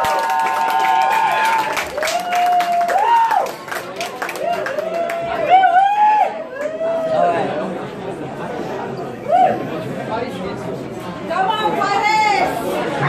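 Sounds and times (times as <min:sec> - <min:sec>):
audience chatter: 0:00.0 - 0:13.0.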